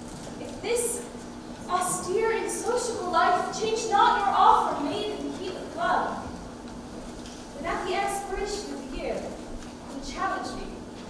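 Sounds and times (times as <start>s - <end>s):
young woman speaking lines: 1.7s - 6.2s, 7.6s - 9.2s.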